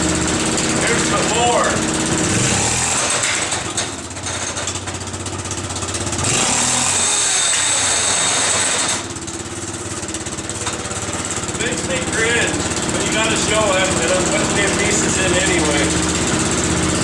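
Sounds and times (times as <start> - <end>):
utility vehicle engine running: 0.0 - 17.0.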